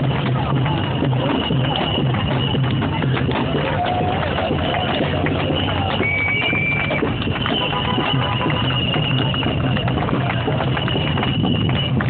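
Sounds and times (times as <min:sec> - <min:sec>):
crowd marching: 0:00.0 - 0:12.0.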